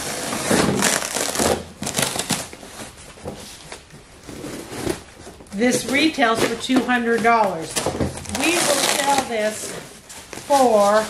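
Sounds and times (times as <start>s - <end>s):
cardboard and tape crinkling: 0.0s - 11.0s.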